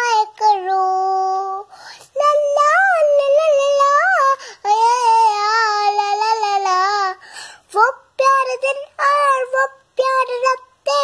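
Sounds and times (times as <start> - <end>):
girl singing in high voice: 0.0 - 11.0.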